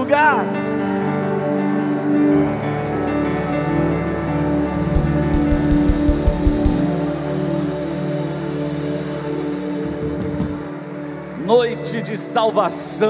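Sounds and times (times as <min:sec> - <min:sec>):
held keyboard chords: 0:03.7 - 0:07.2
low drum hits: 0:04.9 - 0:06.9.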